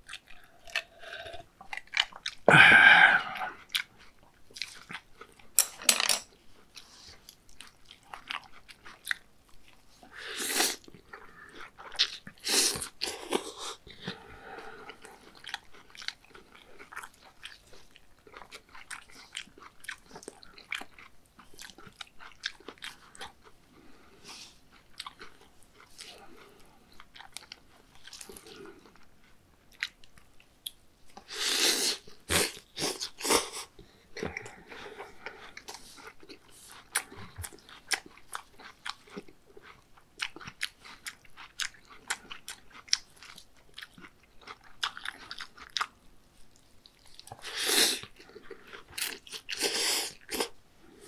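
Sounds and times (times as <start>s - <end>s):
chewing and crunching food: 0.0s - 51.0s.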